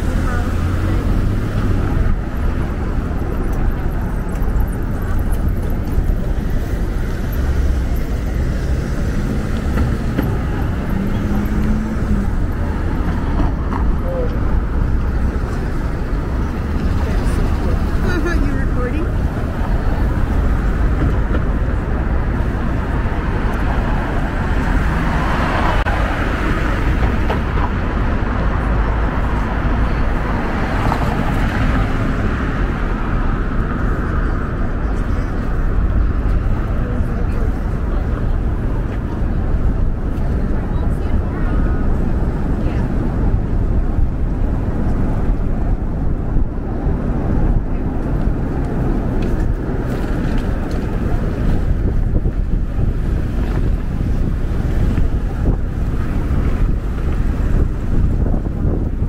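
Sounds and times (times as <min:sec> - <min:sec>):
indistinct voices: 0:00.0 - 0:27.5
traffic rumble: 0:00.0 - 0:59.0.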